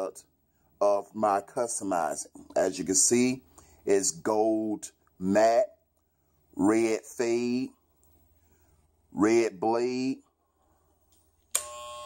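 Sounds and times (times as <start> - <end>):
hair trimmer buzzing: 11.5 - 12.0.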